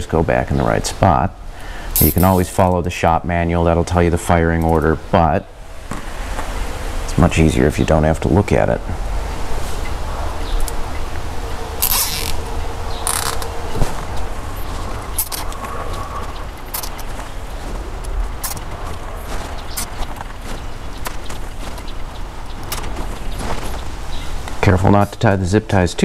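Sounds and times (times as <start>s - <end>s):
steady low hum: 0.0s - 26.0s
zip ties zipping tight: 2.0s - 2.4s, 11.8s - 12.4s
handling clicks and rustles: 11.8s - 25.0s.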